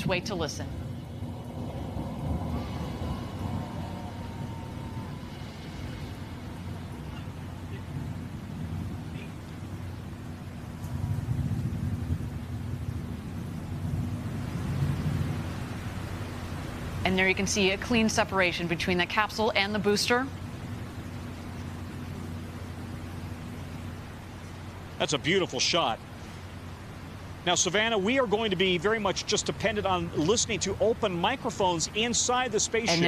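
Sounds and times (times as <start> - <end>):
low rumble with hiss: 0.0 - 33.0.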